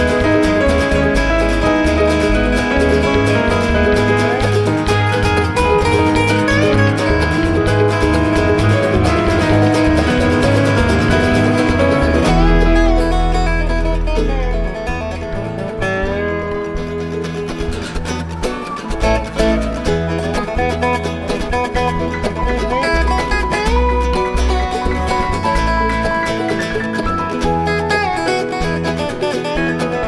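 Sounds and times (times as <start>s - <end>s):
bluegrass band playing: 0.0s - 30.0s
slide dobro lead: 0.0s - 30.0s.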